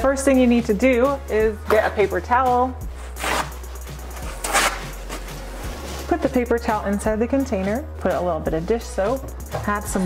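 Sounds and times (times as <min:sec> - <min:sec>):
faint background music: 0:00.0 - 0:10.0
paper towel rustling: 0:02.9 - 0:06.4.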